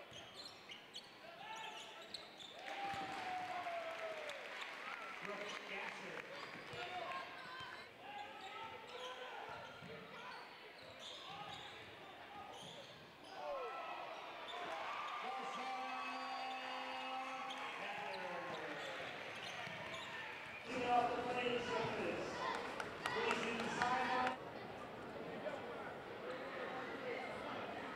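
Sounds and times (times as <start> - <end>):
crowd yelling: 2.6 - 5.1, 13.3 - 24.4
crowd voices: 11.5 - 27.9.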